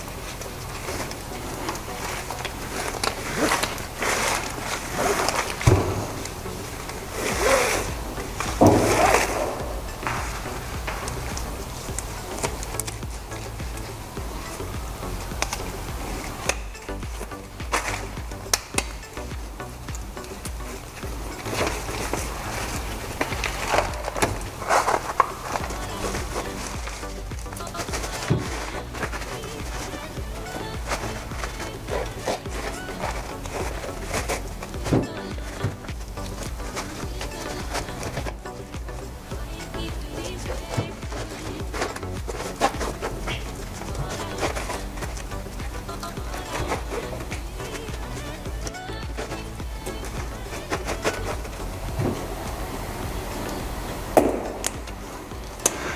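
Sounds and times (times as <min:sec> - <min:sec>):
background music: 0:00.0 - 0:55.9
exhaust wrap rustling and scraping: 0:00.0 - 0:55.9.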